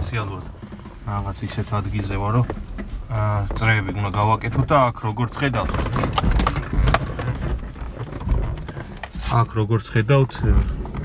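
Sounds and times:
low car driving rumble: 0.0 - 11.0
suspension knocks and thumps: 0.0 - 11.0.

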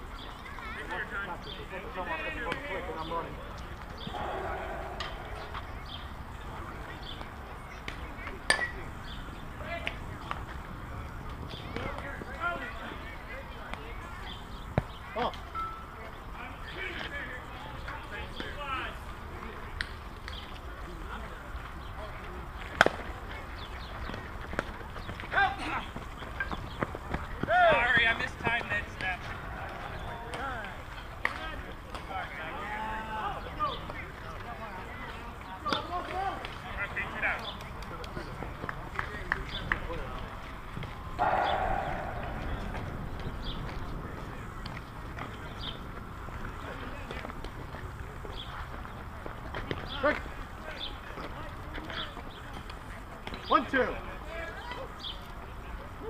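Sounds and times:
players calling and shouting: 0.0 - 56.0.

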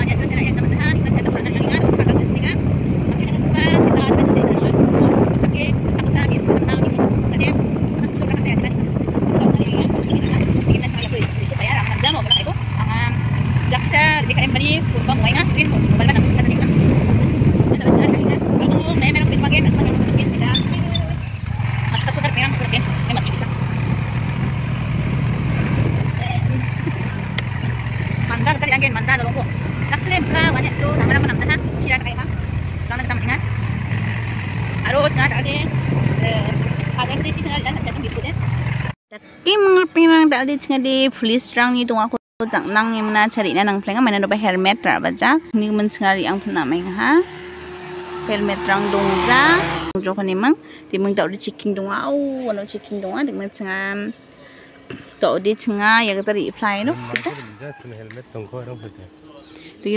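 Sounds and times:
voices talking: 0.0 - 38.5, 39.1 - 59.9
motorcycle engine running: 0.0 - 39.0, 43.5 - 59.9.

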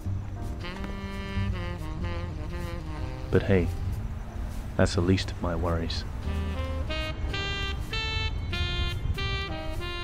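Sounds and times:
saxophone melody: 0.5 - 4.2, 6.1 - 10.0.

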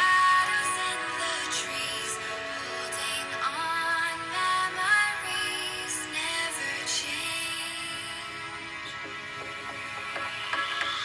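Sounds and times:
pop song through phone speakers: 0.0 - 11.0.

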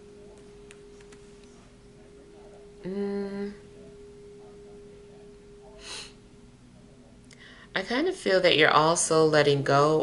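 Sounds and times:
faint steady tone: 0.0 - 10.0
woman humming: 2.8 - 3.7.

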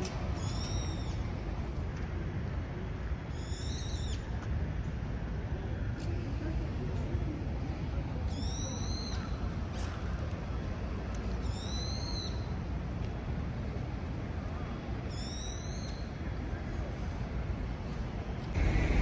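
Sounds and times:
street noise rumble: 0.0 - 19.0.

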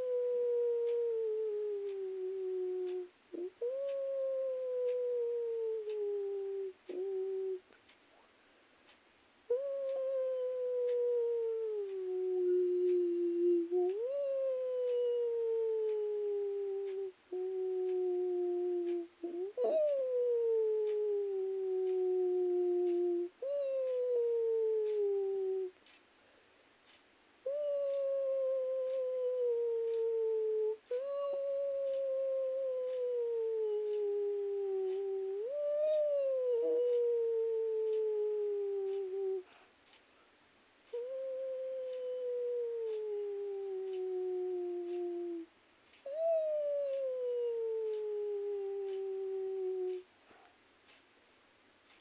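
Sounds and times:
long wailing howls: 0.0 - 7.6, 9.5 - 25.7, 27.5 - 39.5, 40.9 - 45.5, 46.1 - 50.0.

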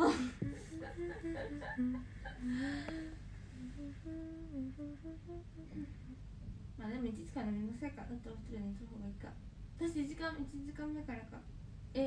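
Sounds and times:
woman humming a tune: 0.0 - 6.3.

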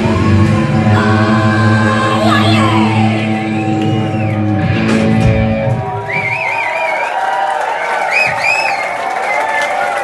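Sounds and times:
crowd cheering and applauding: 0.0 - 10.0.

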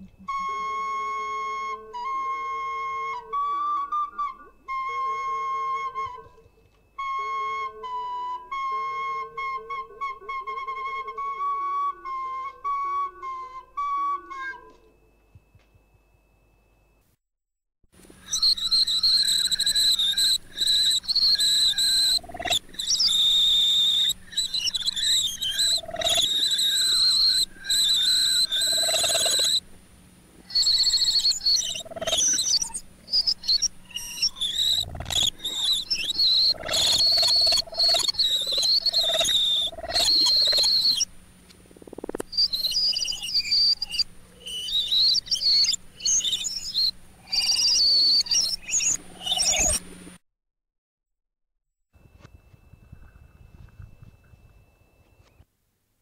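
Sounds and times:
shrill wavering whistle-like tone: 0.0 - 16.0, 18.2 - 29.6, 30.5 - 41.1, 42.3 - 49.8
steady low hum: 18.0 - 50.2, 52.0 - 55.4.

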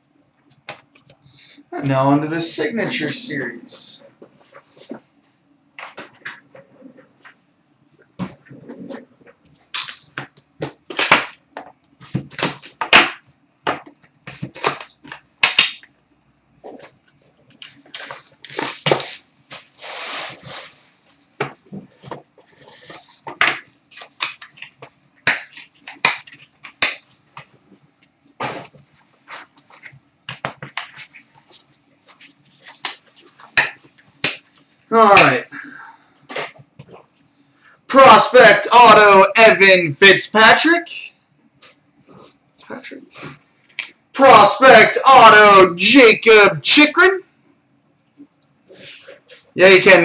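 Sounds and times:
faint steady hum: 0.0 - 50.0
cards crinkling and clicking: 9.6 - 11.4, 13.8 - 15.9, 22.0 - 28.1
card pack rustling: 16.7 - 21.2.

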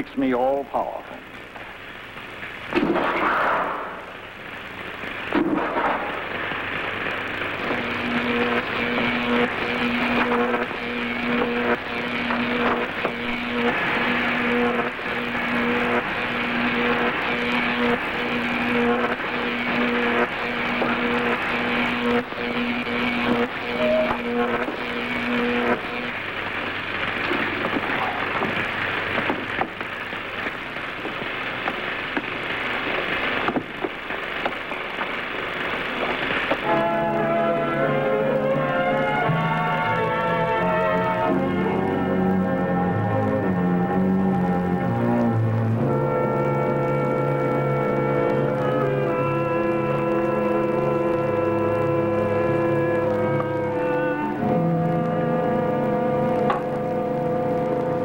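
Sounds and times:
rushing electrical hum: 0.0 - 58.0
low electronic tone pulsing: 7.0 - 29.0.

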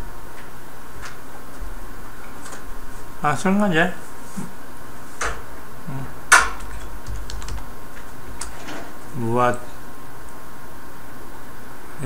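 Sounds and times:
computer keyboard typing: 6.6 - 7.7.

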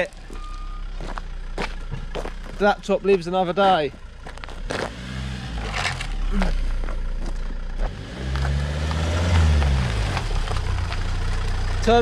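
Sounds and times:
car engine pulling at low speed: 0.0 - 12.0
tyres clicking on gravel: 0.0 - 12.0.

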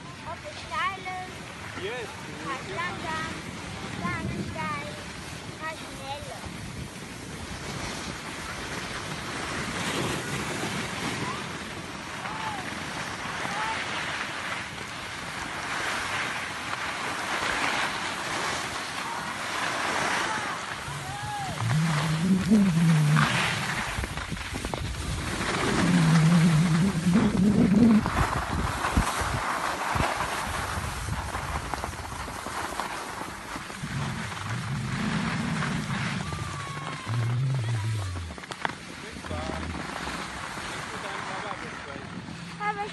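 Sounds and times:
skis scraping over snow: 0.2 - 42.9
wind on microphone: 20.7 - 40.4.

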